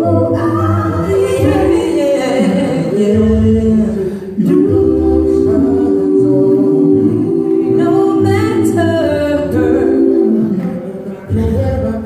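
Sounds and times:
vocal ensemble singing a cappella: 0.0 - 12.0.

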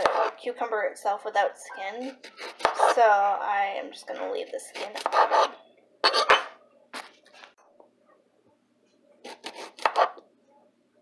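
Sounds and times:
knife slicing cucumber: 0.0 - 0.3, 2.0 - 3.0, 4.7 - 7.1, 9.2 - 10.2.

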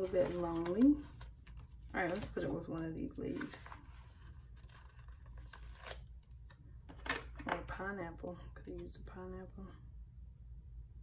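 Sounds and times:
person speaking: 0.0 - 1.2
sticker sheets rustling: 0.0 - 4.2.

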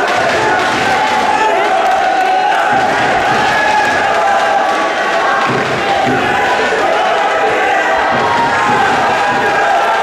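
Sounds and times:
crowd shouting and cheering: 0.0 - 10.0.

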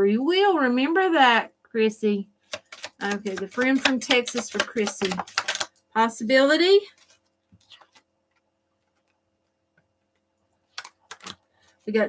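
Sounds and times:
cards clicking and tapping: 2.5 - 5.8, 10.7 - 11.4.

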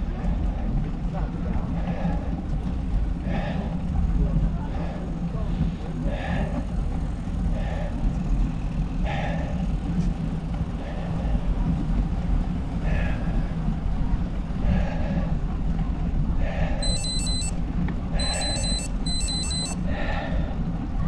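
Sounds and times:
soft repeating sound: 16.8 - 17.5, 18.2 - 19.8.

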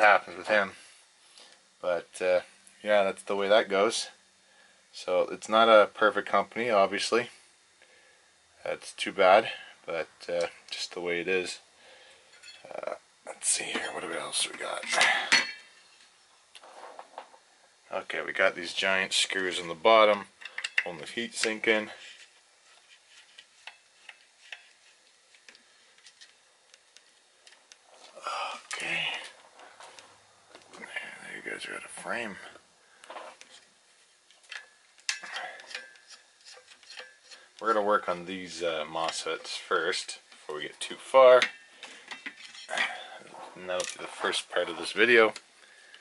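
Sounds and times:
screwdriver clicks and scrapes: 34.3 - 37.5.

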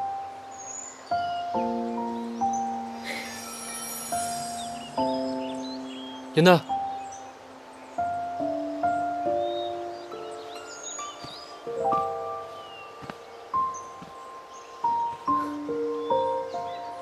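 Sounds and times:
faint bird chirps: 0.0 - 17.0
soft instrumental music: 0.0 - 17.0.

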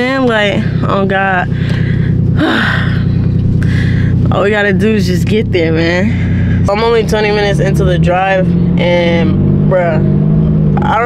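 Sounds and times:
steady low hum: 0.0 - 11.0
woman sighing: 1.5 - 4.2.

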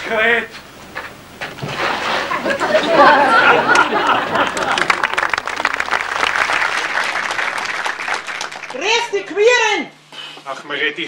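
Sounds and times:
audience chattering and laughing: 2.4 - 8.7
audience clapping: 3.0 - 9.3.

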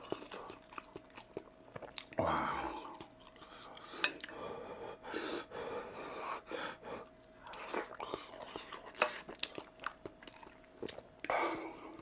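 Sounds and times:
man chewing noodles: 0.0 - 12.0.

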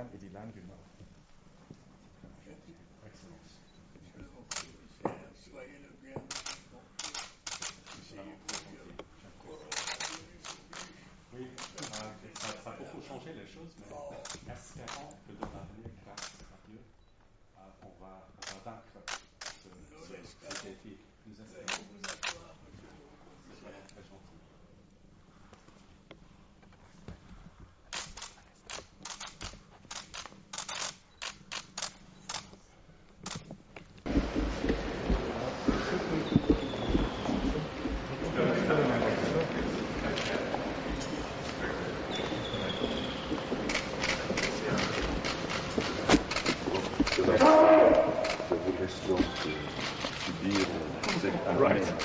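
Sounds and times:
camera shutters clicking: 4.5 - 4.8, 6.3 - 8.7, 9.6 - 11.0, 11.6 - 12.7, 18.4 - 19.7, 20.5 - 20.8, 21.7 - 22.5, 27.9 - 32.6, 33.2 - 33.5, 43.6 - 52.0
man speaking: 8.0 - 15.8, 46.7 - 52.0.

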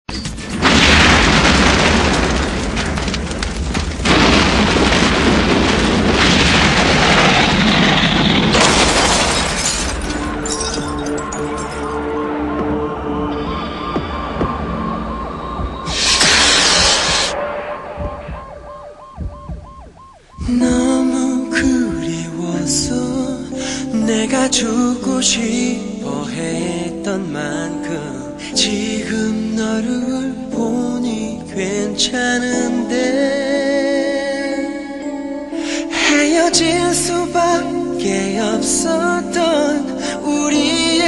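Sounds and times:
deep rumble: 0.5 - 23.3
siren sweeping: 11.6 - 22.2
loud rushing noise: 12.0 - 20.8.

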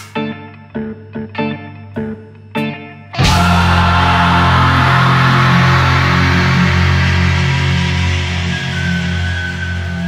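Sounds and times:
heavy rock music with guitar: 0.0 - 10.0.

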